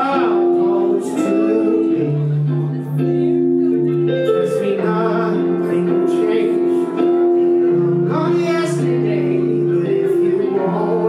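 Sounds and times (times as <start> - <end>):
instrumental accompaniment: 0.0 - 11.0
man singing sustained notes: 0.0 - 11.0.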